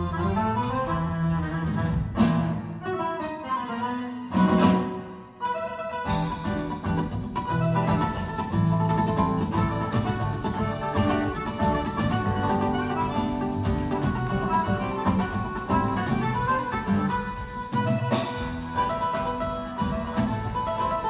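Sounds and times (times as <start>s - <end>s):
percussion: 0.0s - 2.8s, 6.0s - 21.0s
accordion: 0.0s - 21.0s
acoustic guitars picking: 0.0s - 21.0s.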